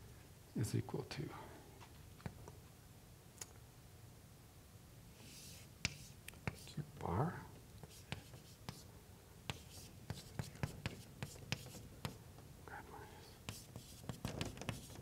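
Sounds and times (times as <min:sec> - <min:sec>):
chalk tapping and scraping on blackboard: 0:05.2 - 0:06.8, 0:07.8 - 0:12.5, 0:13.4 - 0:15.0.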